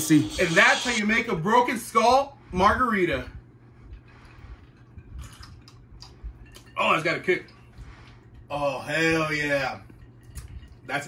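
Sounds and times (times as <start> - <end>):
faint sipping: 3.8 - 6.8.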